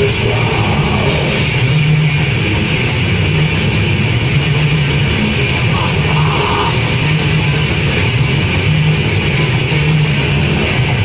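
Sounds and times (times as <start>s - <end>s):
death metal band playing: 0.0s - 11.0s
heavily distorted guitar riffs: 0.0s - 11.0s.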